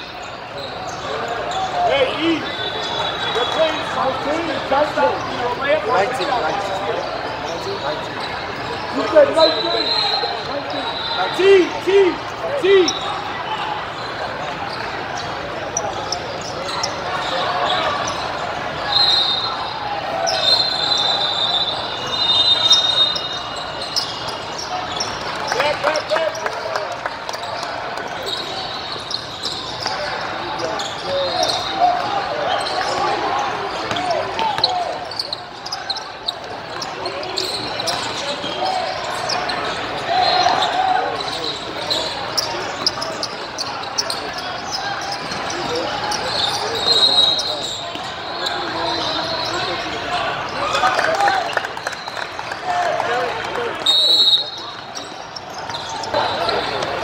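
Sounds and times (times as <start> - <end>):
sneaker squeaks: 0.0 - 52.5, 53.7 - 57.0
babble of echoing voices: 0.0 - 57.0.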